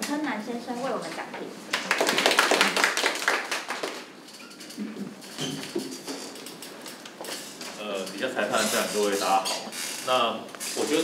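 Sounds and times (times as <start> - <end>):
audience applauding: 1.7 - 4.2.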